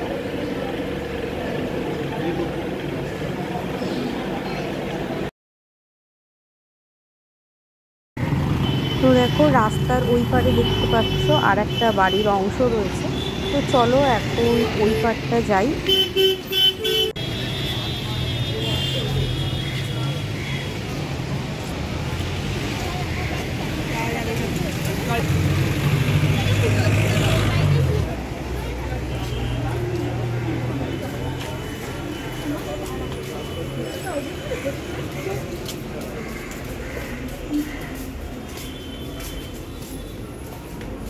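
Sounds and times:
city street traffic: 0.0s - 5.3s, 8.2s - 41.0s
people talking: 0.0s - 5.3s, 9.0s - 15.8s, 26.2s - 38.6s
vehicle engine rumbling: 0.0s - 5.3s.

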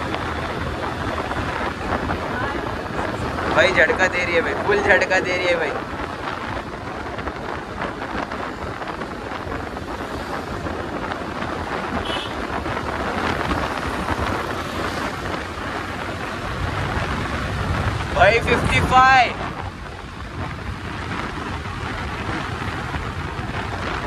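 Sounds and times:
scooter engine and road noise: 0.0s - 24.0s
wind buffeting microphone: 0.0s - 24.0s.

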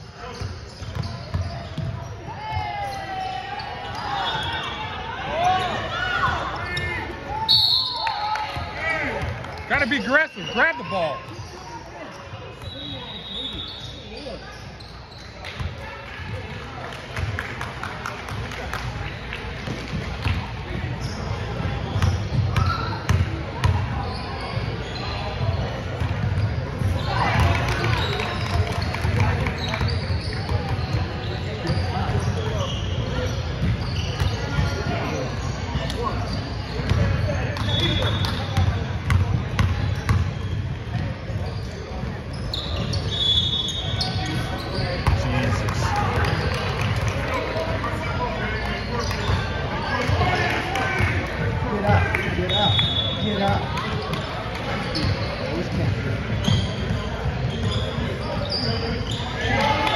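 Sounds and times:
voices in background: 0.0s - 59.9s.

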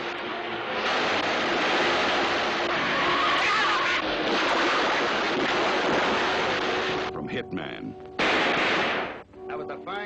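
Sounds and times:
road noise: 0.0s - 7.8s.

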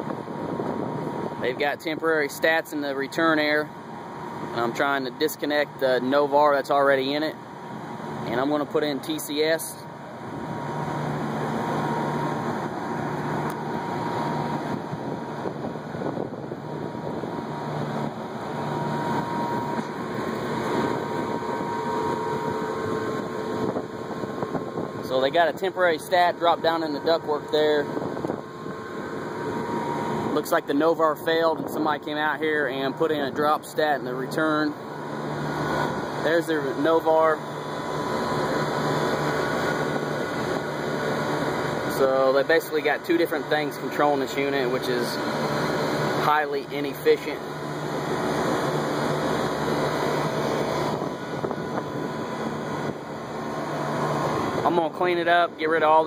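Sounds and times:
air conditioning unit running: 0.0s - 56.0s
faint steady whine: 0.0s - 56.0s
hvac equipment humming: 0.0s - 56.0s
low tone: 6.0s - 56.0s.

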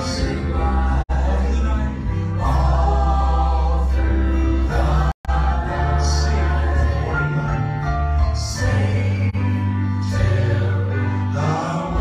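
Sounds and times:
electric bass line: 0.0s - 12.0s
grand piano: 0.0s - 12.0s
people singing: 0.0s - 12.0s.

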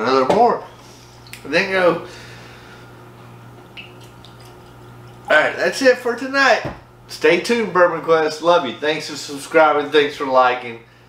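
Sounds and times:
low room hum: 0.0s - 11.0s
liquid pouring into glass: 3.7s - 5.3s.

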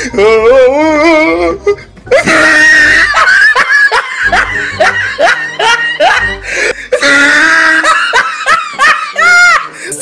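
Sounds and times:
person laughing: 2.1s - 10.0s.

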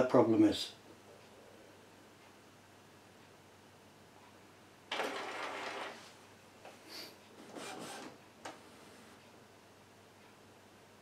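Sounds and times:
printer mechanical movements: 4.9s - 6.0s, 7.4s - 9.2s
printer carriage motor: 4.9s - 6.1s, 7.4s - 9.2s.

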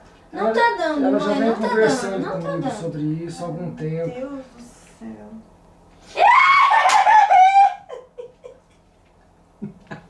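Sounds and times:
person shrieking: 6.1s - 7.9s
person laughing: 7.1s - 8.8s.

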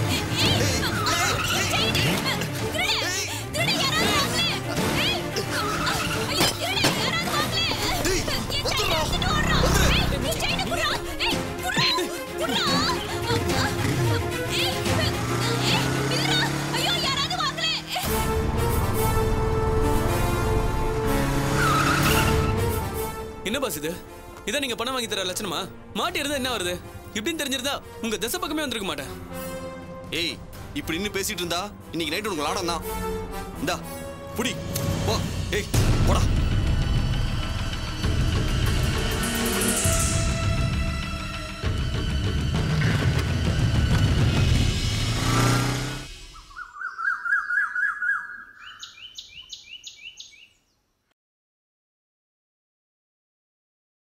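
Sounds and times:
background music: 0.0s - 46.6s
bird chirping: 46.2s - 51.1s.

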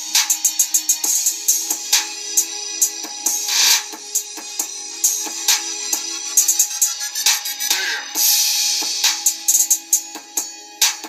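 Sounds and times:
drum machine beat: 0.0s - 11.0s.

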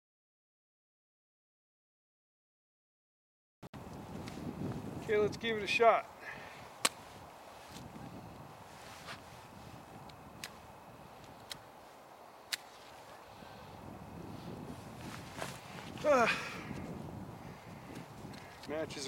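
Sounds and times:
faint breeze: 3.8s - 19.0s
matches being struck: 6.8s - 7.0s, 10.0s - 11.8s, 12.4s - 13.2s.

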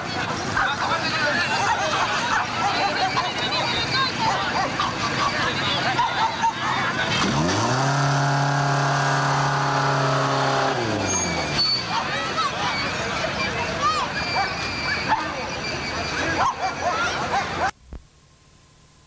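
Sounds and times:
crowd chatter: 0.0s - 17.8s
car engine revving: 7.0s - 11.8s.

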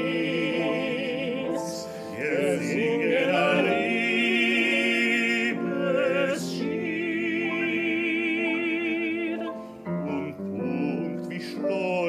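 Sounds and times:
male voices singing: 0.0s - 12.0s
man singing with vibrato: 0.0s - 12.0s
piano chords: 0.0s - 12.0s.

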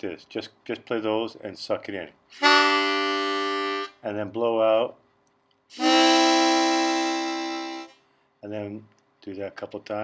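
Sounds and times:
harmonica chord: 2.3s - 4.0s, 5.7s - 8.0s.

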